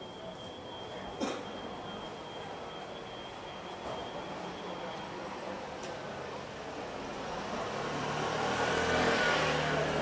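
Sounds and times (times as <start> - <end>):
vehicle driving past: 7.2 - 10.0.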